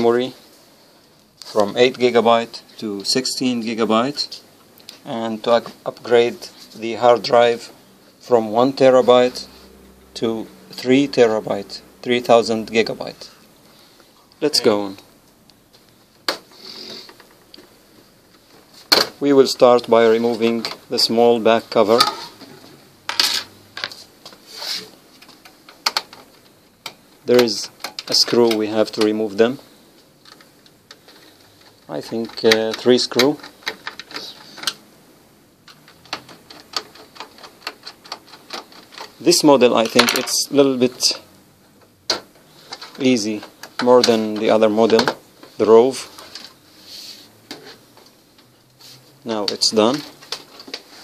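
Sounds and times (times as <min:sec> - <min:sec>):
soft rustle: 0:45.4 - 0:48.1.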